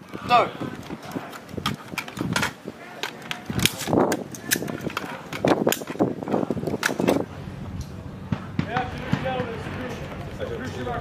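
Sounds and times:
metallic rifle clicks and clacks: 0:00.8 - 0:07.3.

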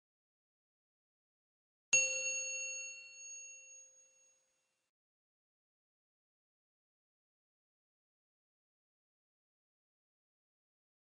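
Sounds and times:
bell-like chime: 0:02.0 - 0:04.8.

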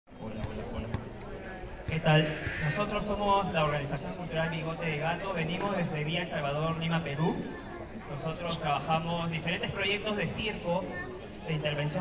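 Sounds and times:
man speaking through loudspeaker: 0:00.1 - 0:12.0
murmur of voices: 0:00.1 - 0:12.0.

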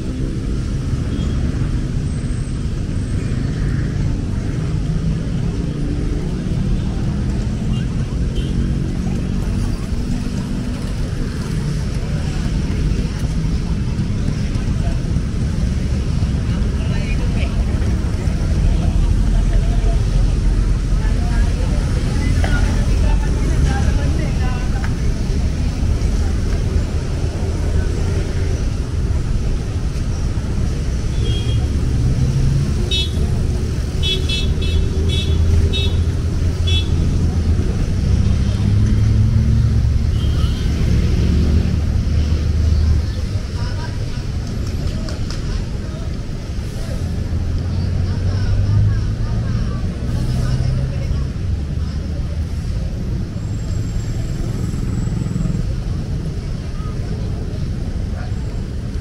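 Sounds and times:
cars and motorcycles passing: 0:00.0 - 0:59.0
city road traffic rumble: 0:00.0 - 0:59.0.

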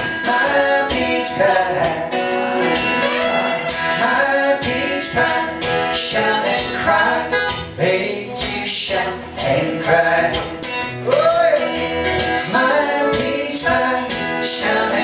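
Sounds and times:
acoustic guitar: 0:00.0 - 0:15.0
woman singing: 0:04.0 - 0:07.6, 0:12.5 - 0:15.0.

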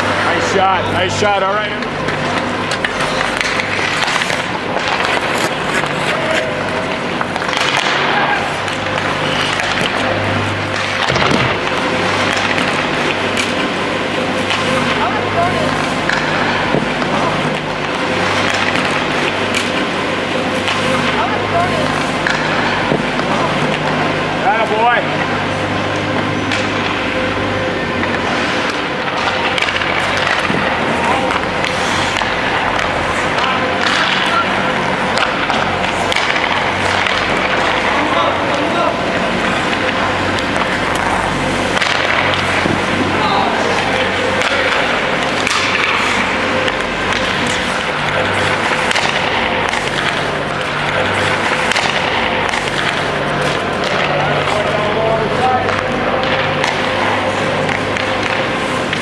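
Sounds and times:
indistinct voices: 0:00.0 - 0:59.0
steady low hum: 0:00.0 - 0:59.0
hockey sticks and puck knocks: 0:01.2 - 0:25.0, 0:26.4 - 0:27.0, 0:28.0 - 0:59.0
ice skates scraping ice: 0:02.1 - 0:25.0, 0:28.0 - 0:59.0.

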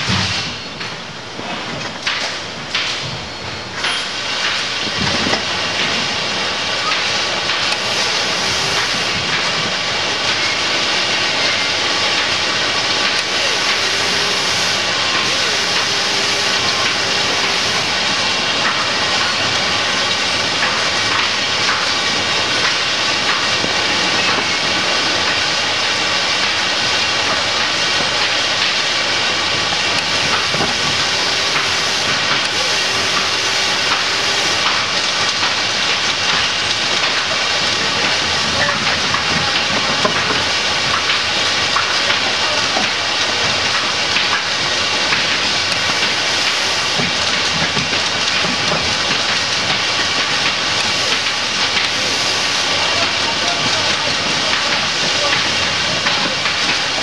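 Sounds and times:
machinery hiss: 0:03.2 - 0:57.0
faint steady tones: 0:13.0 - 0:19.4, 0:29.9 - 0:35.0.

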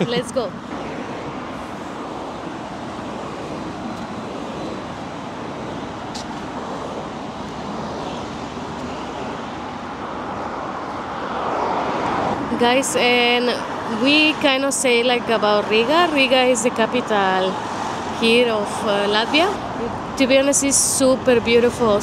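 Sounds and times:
city street traffic: 0:00.0 - 0:22.0.

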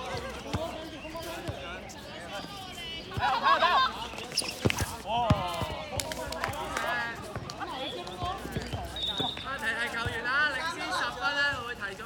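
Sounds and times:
balls thudding on hard court: 0:04.5 - 0:06.6.

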